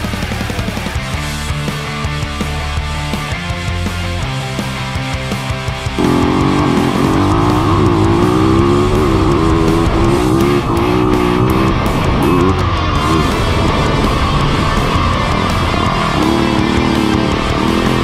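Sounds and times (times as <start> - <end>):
rock music with electric guitar: 0.0 - 18.0
motocross bike engine revving: 4.6 - 18.0.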